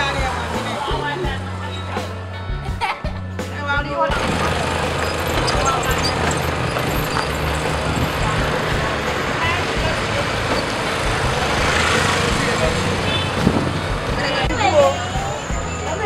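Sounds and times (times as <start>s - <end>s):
traffic engines humming: 0.0s - 16.0s
vehicle passing close: 4.1s - 15.7s.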